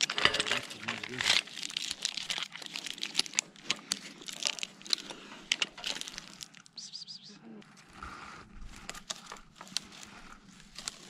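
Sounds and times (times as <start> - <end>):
brief wordless voice: 6.8 - 7.7
rope scraping against tree bark: 7.6 - 11.0.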